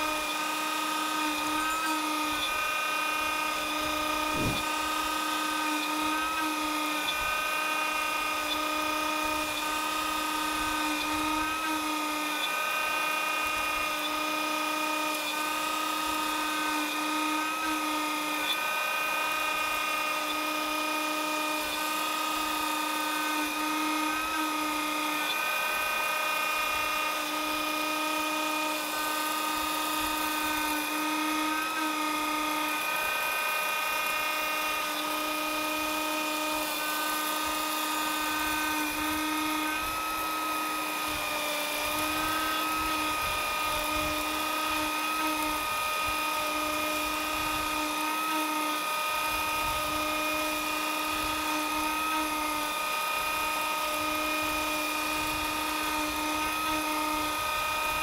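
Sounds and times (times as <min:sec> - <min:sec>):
router milling wood high whine: 0:00.0 - 0:58.0.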